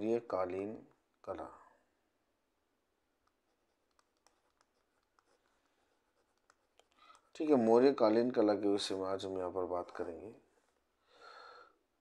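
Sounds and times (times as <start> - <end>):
stylus ticks on whiteboard: 3.2 - 7.4.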